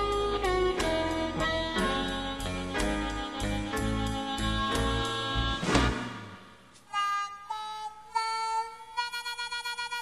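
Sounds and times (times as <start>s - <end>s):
blues harmonica playing: 0.0s - 5.6s, 6.8s - 10.0s.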